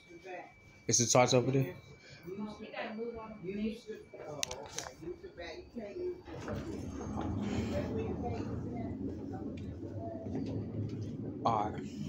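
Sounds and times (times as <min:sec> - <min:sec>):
indistinct voices talking: 0:00.9 - 0:12.0
even rushing noise: 0:06.5 - 0:12.0.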